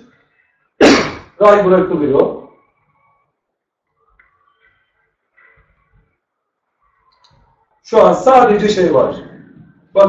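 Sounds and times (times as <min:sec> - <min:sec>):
man speaking: 0:01.4 - 0:02.6, 0:07.8 - 0:10.0
faint clicks: 0:06.9 - 0:07.5.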